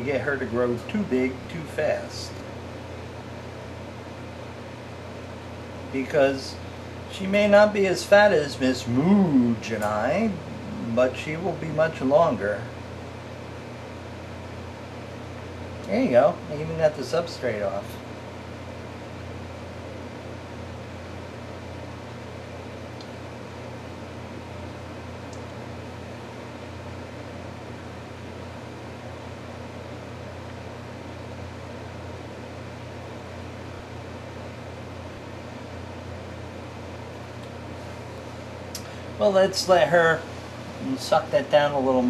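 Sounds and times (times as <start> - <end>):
low mechanical hum: 0.0 - 42.0.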